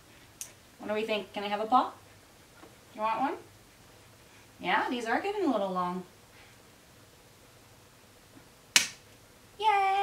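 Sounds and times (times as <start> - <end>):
nail clipper snap: 8.7 - 9.0.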